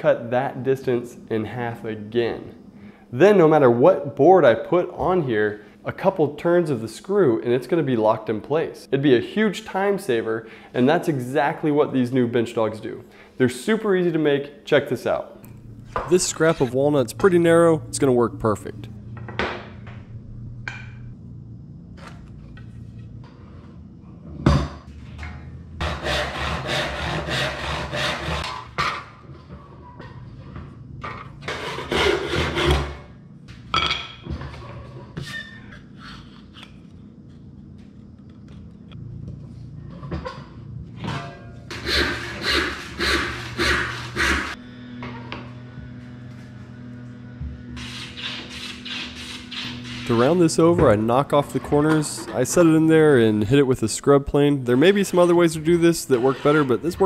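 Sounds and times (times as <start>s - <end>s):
hand plane on wood: 25.8s - 28.5s, 41.7s - 44.6s, 47.8s - 50.3s
hand saw cutting wood: 25.8s - 28.6s, 31.4s - 32.9s, 41.7s - 44.6s, 47.8s - 50.4s, 56.1s - 57.0s.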